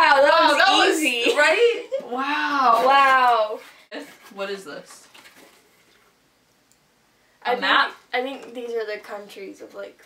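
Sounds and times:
paper leaflet rustling: 2.8 - 6.1.

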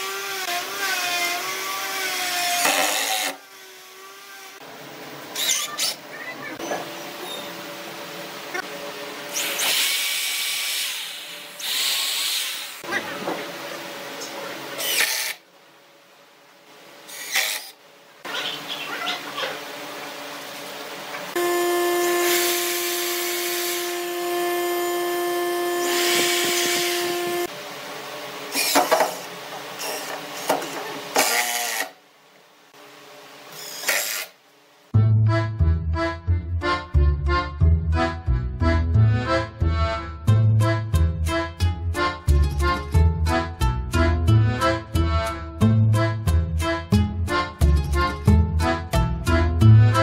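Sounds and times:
electric drill boring into wood: 0.0 - 4.6, 14.8 - 15.4, 17.1 - 17.8, 21.4 - 27.5, 28.5 - 30.5, 31.2 - 32.0, 33.6 - 34.4
cordless drill driving screws: 2.5 - 3.4, 14.8 - 15.4, 31.2 - 32.0, 33.6 - 34.4.

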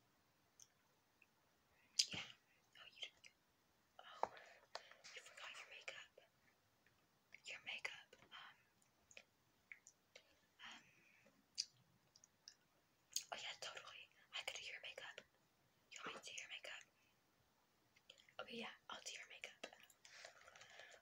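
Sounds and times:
person whispering: 2.0 - 3.3, 4.0 - 6.3, 7.4 - 8.7, 13.2 - 15.2, 15.9 - 16.9, 18.4 - 21.0.

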